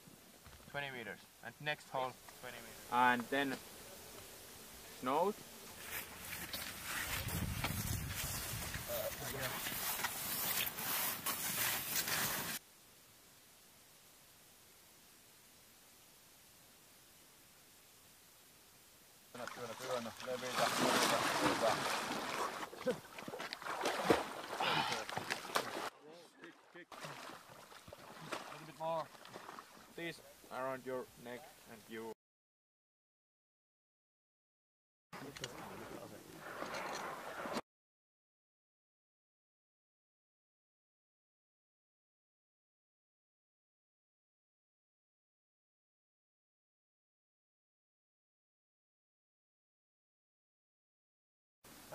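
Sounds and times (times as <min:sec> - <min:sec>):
low background hiss: 0:00.0 - 0:06.9, 0:12.6 - 0:24.5, 0:26.0 - 0:32.2
ski poles planting: 0:05.7 - 0:12.6
skis scraping over snow: 0:05.8 - 0:12.6, 0:35.7 - 0:37.6.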